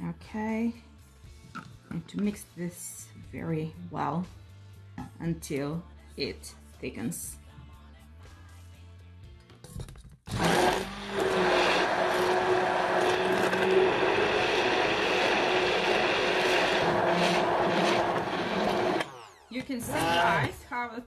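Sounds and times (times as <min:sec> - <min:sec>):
soft background music: 0:00.0 - 0:10.0
stick blender motor hum: 0:10.3 - 0:20.5.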